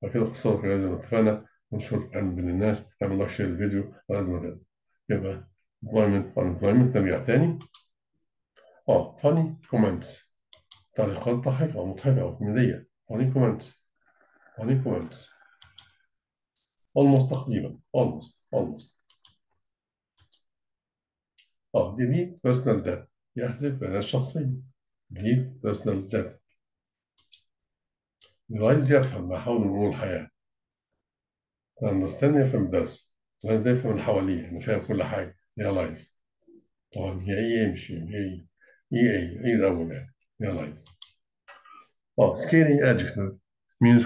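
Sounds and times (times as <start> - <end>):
man speaking: 0.0 - 7.7, 8.8 - 10.2, 10.9 - 13.8, 14.4 - 15.4, 17.0 - 19.0, 21.8 - 26.4, 28.5 - 30.3, 31.8 - 36.2, 37.0 - 40.9, 41.5 - 44.0
computer mouse clicks: 7.6 - 7.9, 10.5 - 10.9, 15.4 - 16.0, 17.2 - 17.5, 19.0 - 19.5, 20.2 - 20.5, 27.2 - 27.5, 40.8 - 41.6.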